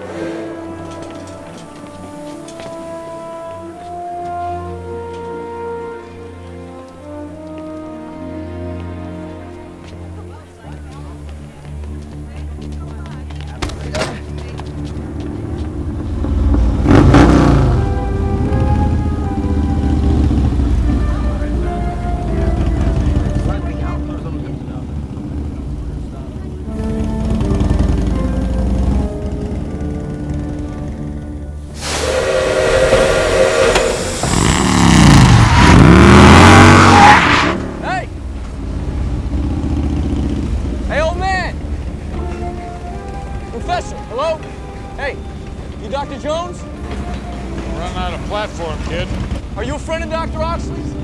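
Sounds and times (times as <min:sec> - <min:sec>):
film music: 0:00.0 - 0:51.0
motorcycle engine running: 0:14.7 - 0:31.5, 0:38.2 - 0:43.1, 0:47.9 - 0:50.7
steam train: 0:31.6 - 0:37.1.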